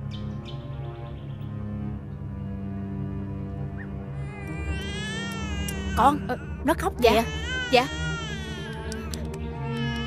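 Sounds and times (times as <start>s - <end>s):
soft background music: 0.0s - 10.0s
infant crying: 4.2s - 10.0s.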